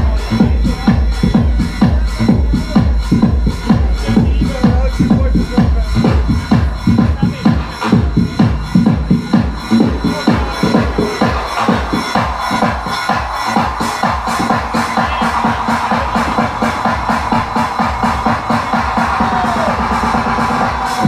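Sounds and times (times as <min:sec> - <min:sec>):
deep bass kick: 0:00.0 - 0:21.0
techno music: 0:00.0 - 0:21.0.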